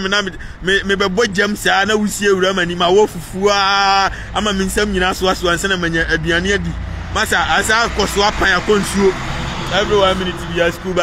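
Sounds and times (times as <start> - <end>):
man speaking: 0.0 - 11.0.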